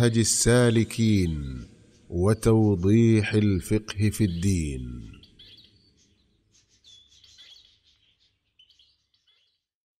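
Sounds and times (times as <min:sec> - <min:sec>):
faint bird chirps and trills: 0:00.0 - 0:09.7.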